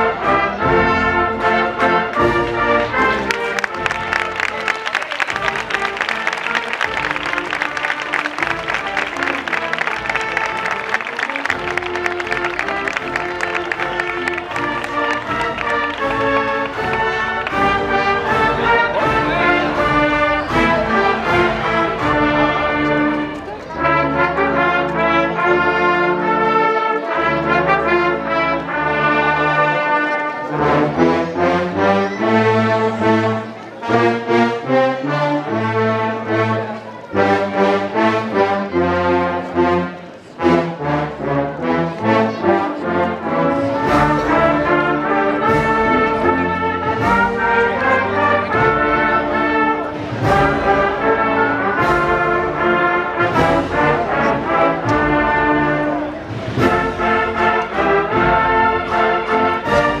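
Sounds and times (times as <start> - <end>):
brass band playing slow chords: 0.0 - 60.0.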